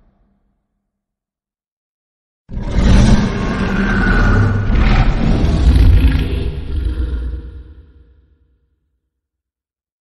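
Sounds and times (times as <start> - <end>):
deep rumbling monster roar: 2.5 - 8.2.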